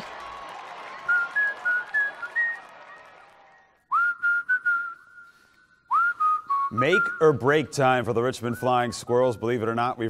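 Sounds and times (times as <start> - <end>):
person whistling a tune: 1.1 - 2.7, 3.9 - 7.7, 8.4 - 9.9.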